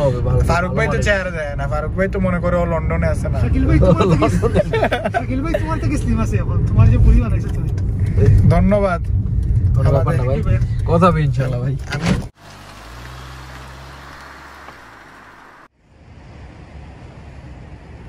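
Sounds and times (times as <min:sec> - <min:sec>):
road rumble inside car: 0:00.0 - 0:18.0
man laughing and talking: 0:03.4 - 0:06.3
car engine idling: 0:12.4 - 0:15.7.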